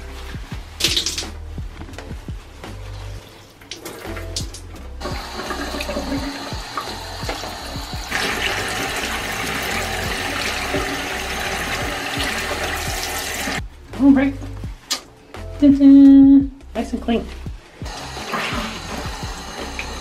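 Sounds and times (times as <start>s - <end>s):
tap running into basin: 3.6s - 13.6s, 17.9s - 20.0s.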